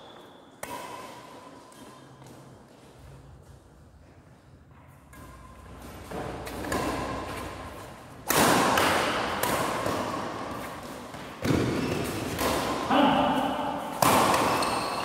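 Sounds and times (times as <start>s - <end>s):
racket hitting shuttlecock: 0.1s - 3.1s, 5.0s - 15.0s.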